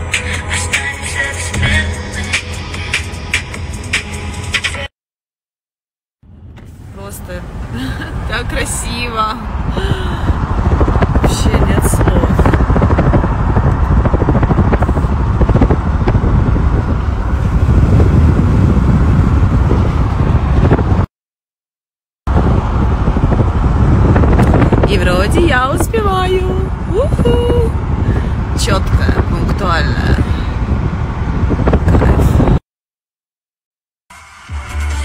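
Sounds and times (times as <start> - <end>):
car road and wind noise: 0.0 - 4.9, 6.2 - 21.1, 22.3 - 32.6.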